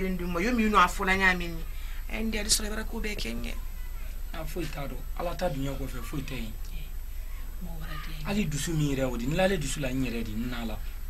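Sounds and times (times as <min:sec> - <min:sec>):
woman speaking: 0:00.0 - 0:04.0, 0:06.6 - 0:08.3
steady low hum: 0:00.0 - 0:11.0.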